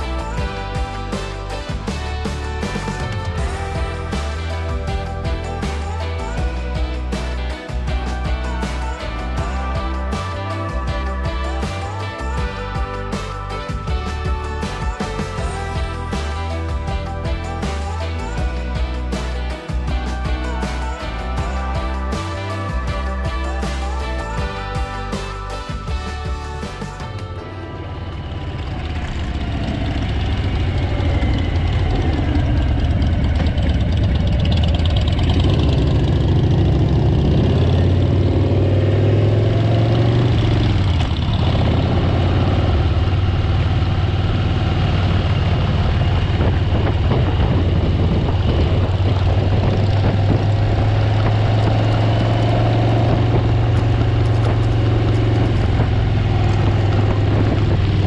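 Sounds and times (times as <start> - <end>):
motorcycle engine running: 0.0 - 58.0
wind rush: 44.4 - 58.0.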